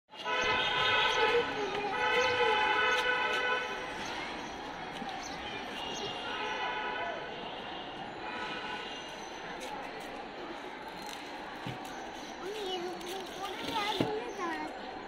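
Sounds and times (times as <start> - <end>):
city street noise: 0.1 - 15.0
vehicle horn blasts: 0.2 - 3.8.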